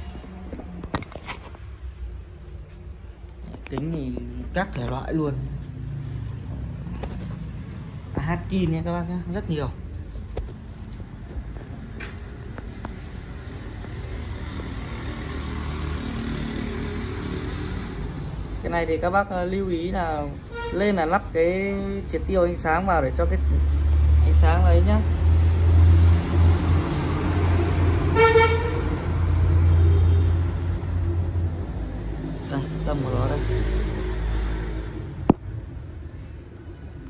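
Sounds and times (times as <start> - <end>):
vehicle engine rumbling: 0.0 - 37.0.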